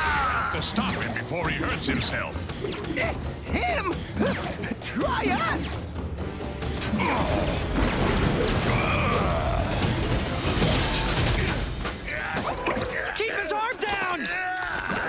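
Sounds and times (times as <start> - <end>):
dramatic music: 0.0 - 14.8
metal clanking and crashes: 8.0 - 12.2.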